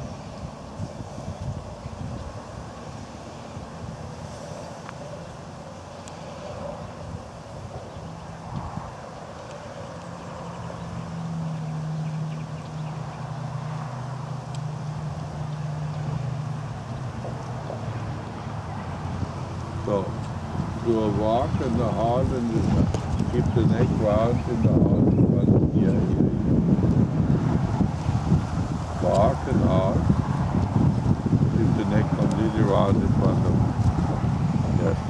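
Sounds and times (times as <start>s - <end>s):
low engine hum: 0.0s - 35.0s
road traffic: 0.0s - 35.0s
wind on microphone: 0.0s - 35.0s.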